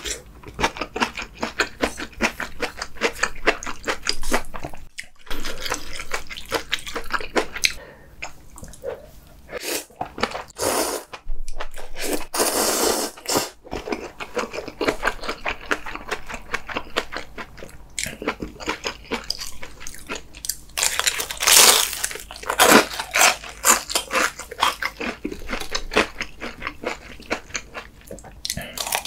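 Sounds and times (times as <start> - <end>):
slurping noodles: 10.6 - 11.2, 12.0 - 13.6
crisp crunching bite: 20.8 - 26.6
chewing: 22.0 - 29.0.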